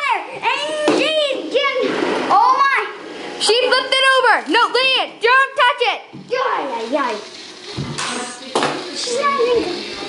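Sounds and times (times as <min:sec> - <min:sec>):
child shouting: 0:00.0 - 0:03.0.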